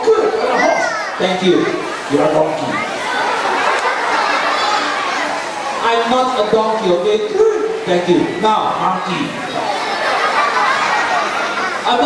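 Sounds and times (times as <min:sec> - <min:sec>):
high-pitched voices chattering: 0:00.0 - 0:12.0.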